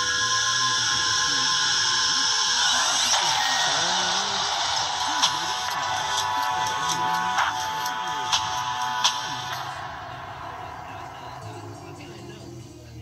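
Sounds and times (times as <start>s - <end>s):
cinematic music on small speaker: 0.0s - 13.0s.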